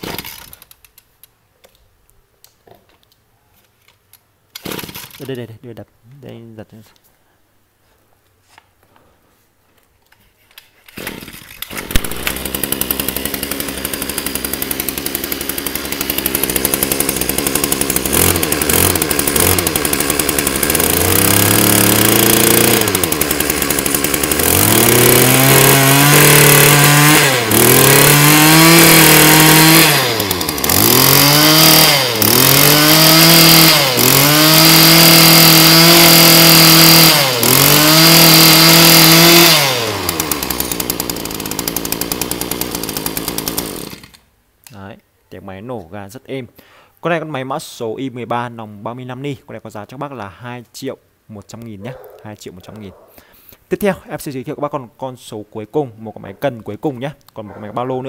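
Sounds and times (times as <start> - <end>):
brush cutter engine revving: 0.0 - 0.6, 4.6 - 5.2, 10.9 - 44.2.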